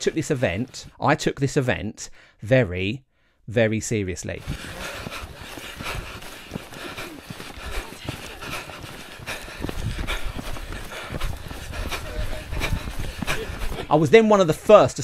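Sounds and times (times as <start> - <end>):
background voices: 4.3 - 15.0
footsteps on stony dirt path: 4.4 - 15.0.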